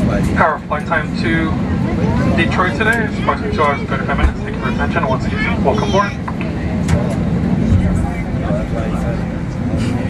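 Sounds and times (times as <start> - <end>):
jet engines idling low rumble: 0.0 - 10.0.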